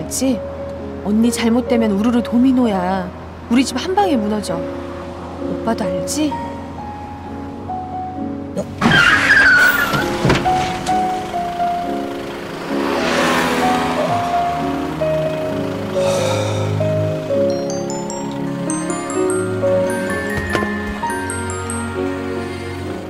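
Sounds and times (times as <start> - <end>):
soft background music: 0.0 - 23.0
car tyres squealing: 8.8 - 10.6
rush of car noise: 8.9 - 23.0
high chime notes: 17.4 - 23.0.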